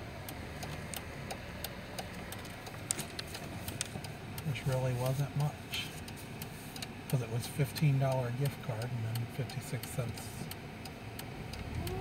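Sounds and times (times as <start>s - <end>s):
car engine running low: 0.0s - 12.0s
faint ticking clicks: 0.0s - 12.0s.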